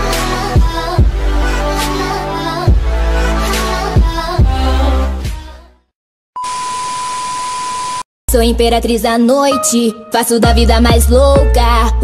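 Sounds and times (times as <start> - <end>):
steady test-tone beep: 6.4 - 8.0.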